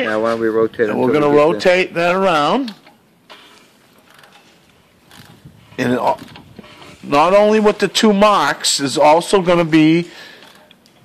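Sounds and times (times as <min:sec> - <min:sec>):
mechanical clicks and rubbing: 0:02.3 - 0:07.1.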